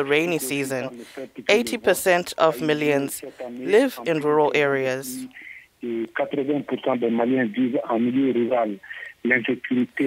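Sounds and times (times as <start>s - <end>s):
man talking over phone line: 0.0s - 10.0s.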